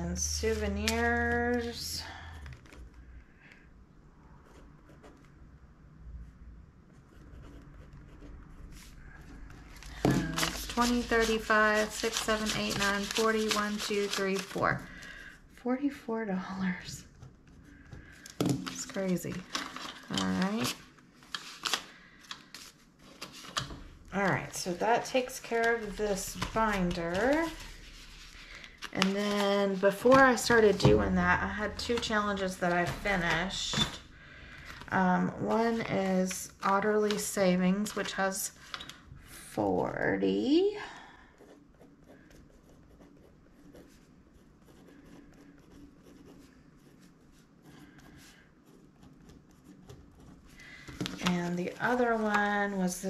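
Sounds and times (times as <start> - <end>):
banknotes rustling: 8.6 - 15.3, 17.7 - 39.0, 49.1 - 53.0.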